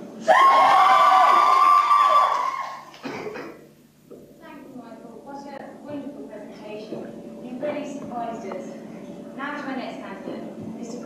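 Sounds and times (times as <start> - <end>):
high-pitched cheer of young voices: 0.2 - 3.0.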